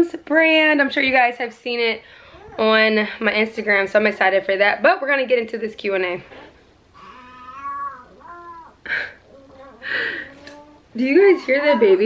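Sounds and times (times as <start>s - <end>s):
baby crying: 7.0s - 12.0s.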